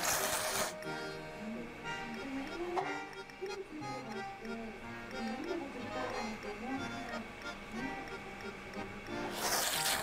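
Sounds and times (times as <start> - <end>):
person slurping noodles: 0.0 - 0.7, 9.3 - 10.0.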